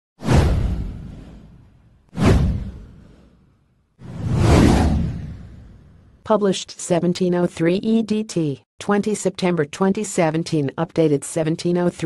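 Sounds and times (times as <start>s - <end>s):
whoosh with low rumble: 0.2s - 6.2s.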